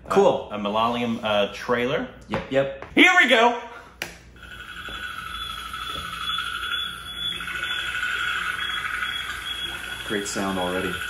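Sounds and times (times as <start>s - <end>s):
high ringing drone: 4.4s - 11.0s.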